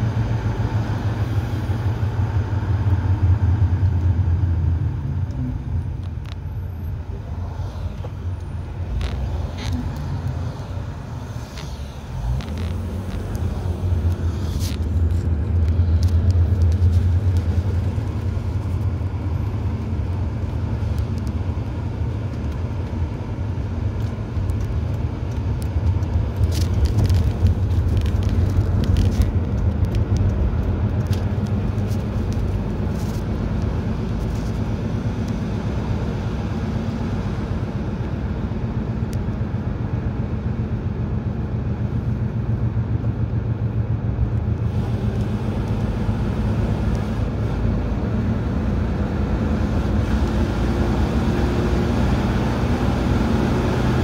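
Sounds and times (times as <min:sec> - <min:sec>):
engine and road rumble: 0:00.0 - 0:54.0.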